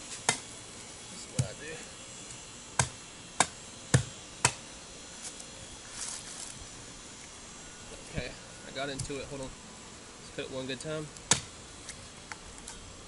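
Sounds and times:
machete chopping coconut husk: 0.2s - 0.4s, 1.3s - 1.6s, 2.8s - 4.6s, 11.3s - 11.5s.

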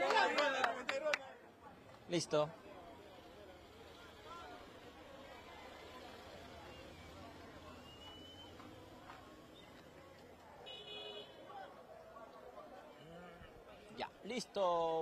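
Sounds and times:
distant crowd voices: 0.0s - 15.0s
low traffic hum: 0.0s - 15.0s.

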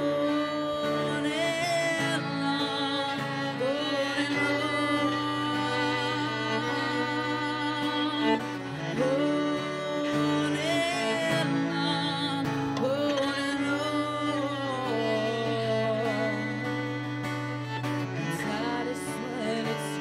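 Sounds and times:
acoustic guitar: 0.0s - 20.0s
cello bowed notes: 0.0s - 20.0s
woman singing: 0.0s - 20.0s.

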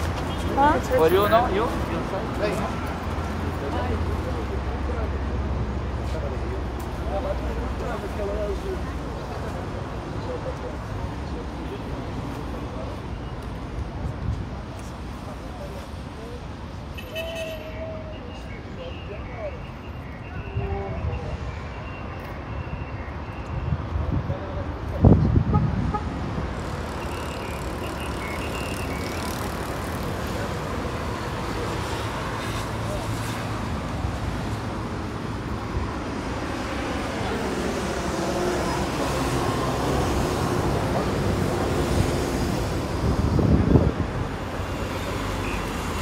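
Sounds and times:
road traffic: 0.0s - 46.0s.

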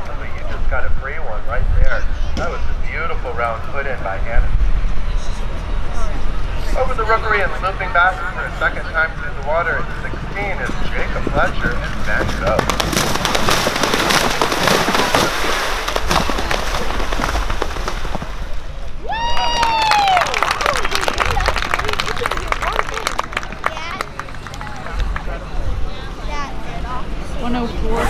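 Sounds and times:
voices: 0.0s - 12.7s, 20.2s - 28.0s
horse splashing through water: 12.1s - 18.8s.

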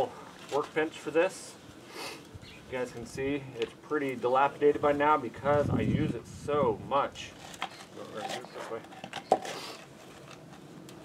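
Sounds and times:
man talking: 0.0s - 1.6s, 2.7s - 8.9s.

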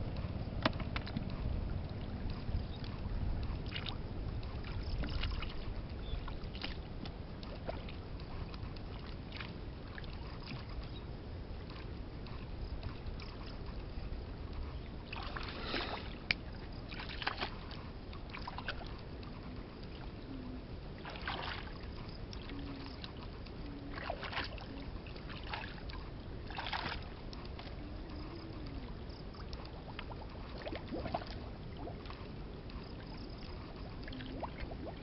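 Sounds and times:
steady low rumble: 0.0s - 35.0s.

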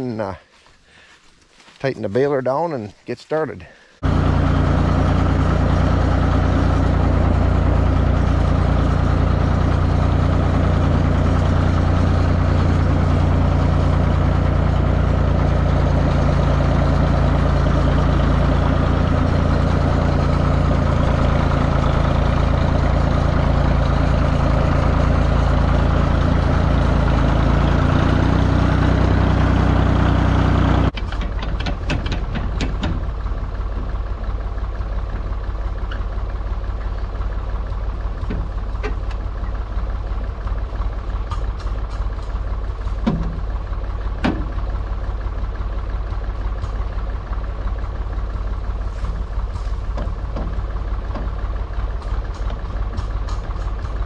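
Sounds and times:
tractor engine running: 1.0s - 54.0s.

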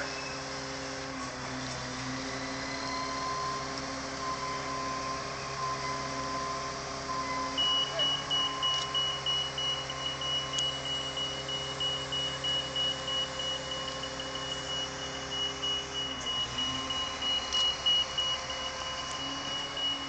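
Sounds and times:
diesel engine running: 0.0s - 20.0s
rapid warning beeper: 2.8s - 20.0s.

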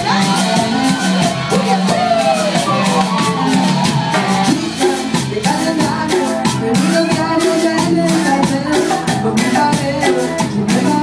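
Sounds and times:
voices singing and shouting: 0.0s - 8.3s
drum kit: 0.0s - 11.0s
electric guitar: 0.0s - 11.0s
live band playing: 0.0s - 11.0s.

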